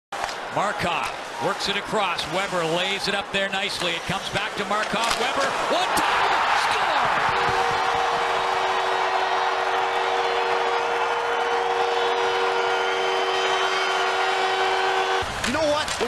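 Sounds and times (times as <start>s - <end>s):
crowd cheering: 0.2s - 16.0s
goal horn long chord: 7.3s - 15.3s.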